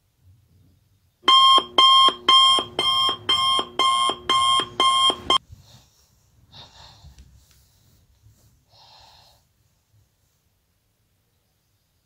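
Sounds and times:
electronic alarm beeping: 1.2s - 5.4s.

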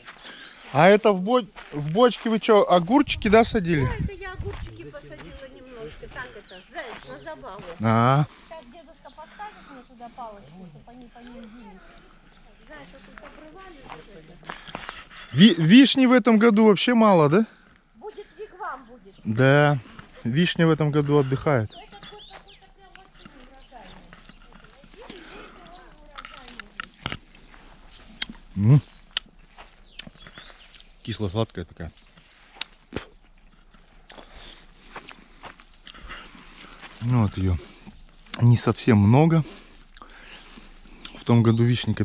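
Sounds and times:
quiet indistinct conversation: 0.0s - 42.0s
man chewing: 24.1s - 31.0s, 32.0s - 38.4s, 39.5s - 41.2s
sharp mouth clicks: 28.1s - 30.9s, 32.5s - 34.3s.

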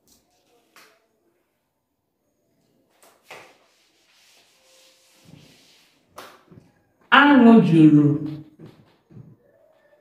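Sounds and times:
eraser rubbing on whiteboard: 3.3s - 6.5s.

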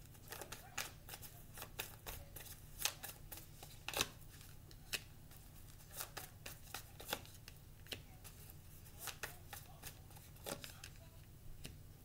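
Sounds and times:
cards rustling while shuffled: 0.0s - 11.8s.

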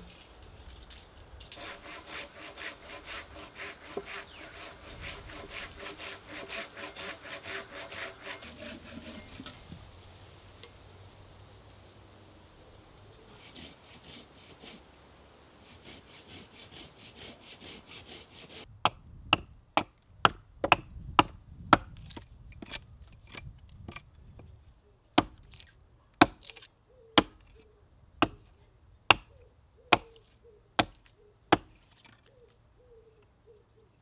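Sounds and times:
hatchet chopping wood: 18.8s - 24.0s, 25.2s - 27.5s, 28.2s - 28.5s, 29.1s - 32.2s.

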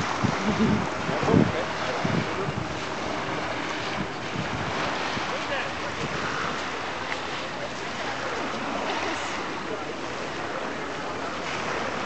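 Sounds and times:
wind blowing across microphone: 0.0s - 9.4s.

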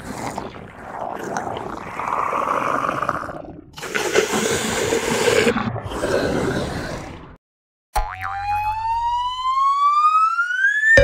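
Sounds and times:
rising whistle tone: 8.3s - 11.0s.

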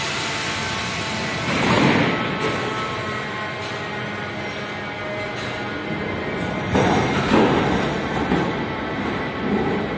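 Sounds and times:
railcar humming: 0.0s - 9.9s
train rumbling moving off: 5.6s - 9.9s.

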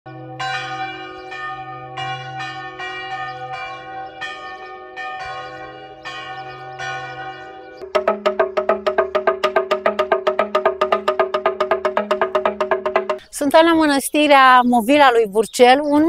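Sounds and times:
church bells ringing: 0.1s - 9.6s.

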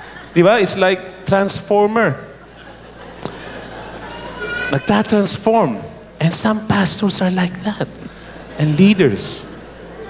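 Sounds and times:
man speaking: 4.7s - 9.6s.

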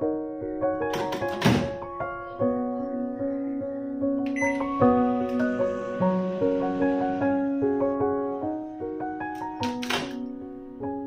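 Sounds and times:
background piano music: 0.0s - 11.0s.

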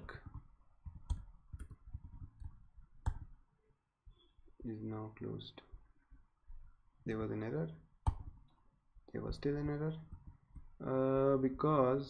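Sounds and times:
keyboard and mouse clicks: 0.1s - 3.4s, 8.0s - 8.5s.

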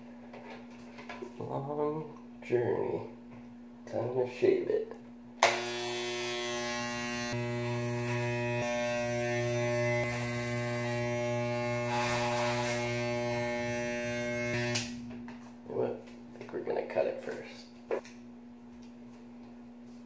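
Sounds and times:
electric hair clippers buzzing: 5.4s - 15.2s.

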